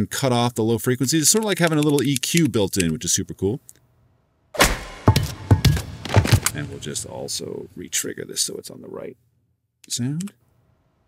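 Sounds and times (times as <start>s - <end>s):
action soundtrack music: 4.6s - 7.5s
footsteps: 4.6s - 7.7s
heavy thuds: 4.6s - 7.8s.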